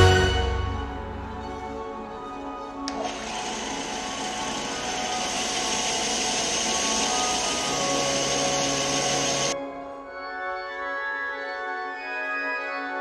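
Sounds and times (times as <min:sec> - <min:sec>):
belt sander sanding wood: 0:02.9 - 0:09.6.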